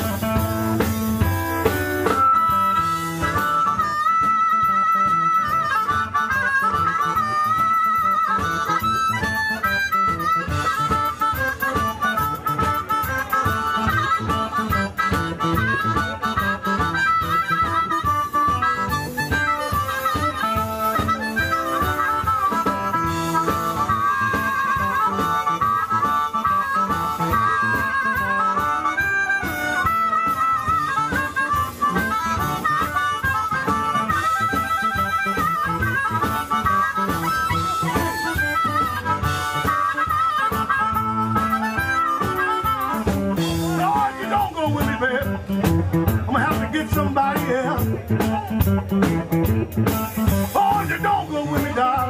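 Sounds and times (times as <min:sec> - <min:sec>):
amplified blues harmonica: 0:00.0 - 0:52.0
backing band with bass and drums: 0:00.0 - 0:52.0.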